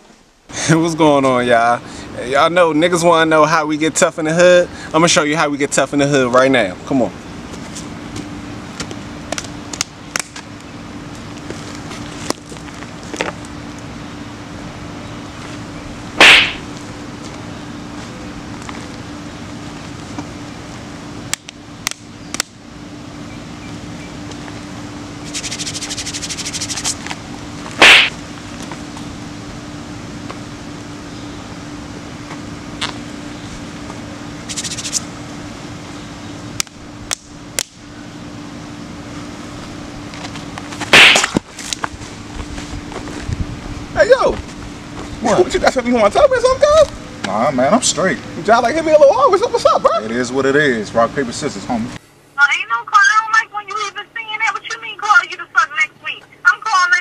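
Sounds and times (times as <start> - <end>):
steady low hum: 0.0 - 56.6
open-hand slaps: 16.2 - 16.6, 27.8 - 28.2, 40.9 - 41.4.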